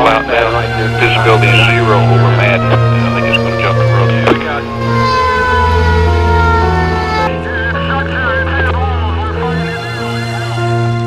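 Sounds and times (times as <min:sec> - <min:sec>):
background music with bass: 0:00.0 - 0:11.0
emergency siren: 0:00.0 - 0:11.0.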